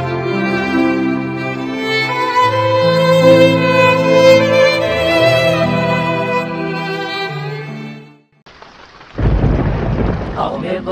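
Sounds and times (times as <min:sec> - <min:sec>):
violin music: 0:00.0 - 0:08.4
rushing rain-like noise: 0:08.5 - 0:10.9
deep thunder rumble: 0:09.2 - 0:10.9.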